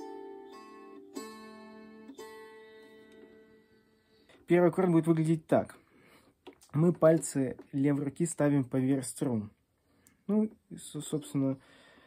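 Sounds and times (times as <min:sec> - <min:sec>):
gusli chords strummed: 0:00.0 - 0:05.7.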